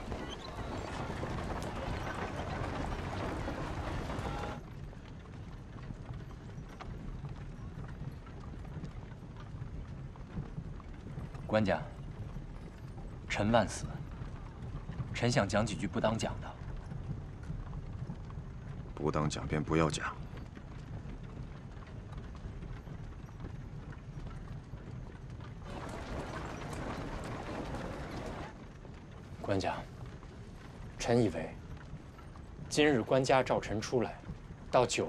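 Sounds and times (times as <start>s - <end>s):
horse hooves clip-clopping: 0.0s - 35.0s
low carriage rumble: 0.0s - 35.0s.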